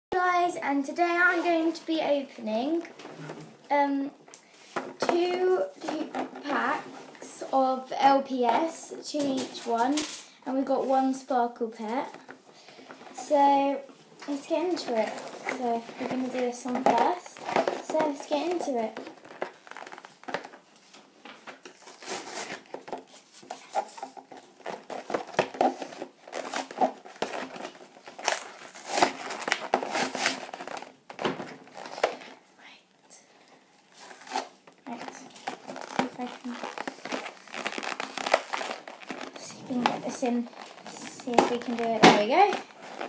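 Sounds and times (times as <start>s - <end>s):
plastic packaging crinkling: 14.7s - 32.8s, 33.9s - 43.0s.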